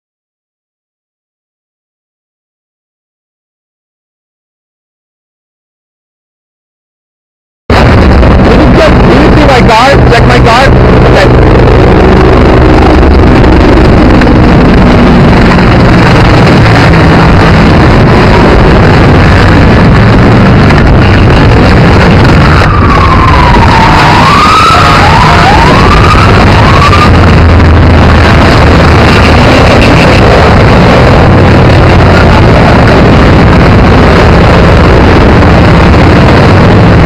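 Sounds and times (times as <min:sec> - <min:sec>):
siren wailing: 0:07.7 - 0:36.6
engine hum: 0:07.7 - 0:37.0
traffic rushing: 0:07.7 - 0:37.0
wind on microphone: 0:07.7 - 0:37.0.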